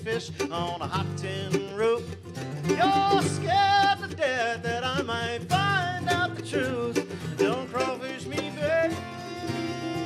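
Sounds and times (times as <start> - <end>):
acoustic guitar: 0.0 - 10.0
mandolin: 0.0 - 10.0
person singing: 0.0 - 10.0.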